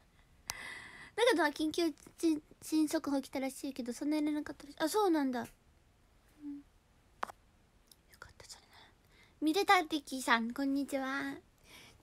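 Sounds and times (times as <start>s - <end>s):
woman whispering: 8.1s - 9.0s.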